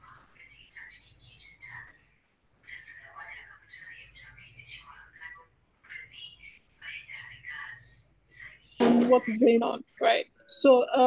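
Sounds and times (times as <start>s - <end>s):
faint whispered speech: 0.0s - 8.8s.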